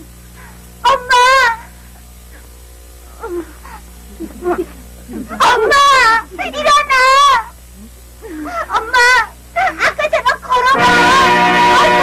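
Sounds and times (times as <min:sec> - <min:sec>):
young boy crying: 0:03.2 - 0:07.5, 0:08.2 - 0:10.8.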